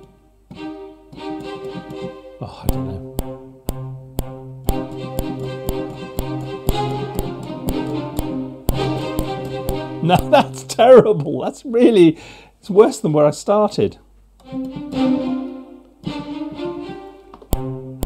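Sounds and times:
metronome clicking: 0.0s - 10.6s, 15.8s - 18.0s
orchestral strings playing spiccato: 0.0s - 11.0s, 14.4s - 18.0s
man speaking: 2.4s - 3.1s, 10.0s - 14.0s.

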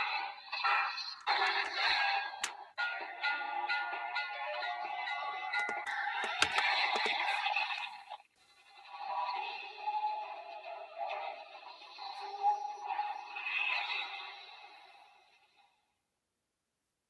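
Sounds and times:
toy belt electronic sound effects: 0.1s - 2.8s, 4.3s - 7.6s
sharp plastic clicks: 1.2s - 2.6s, 5.6s - 7.3s.

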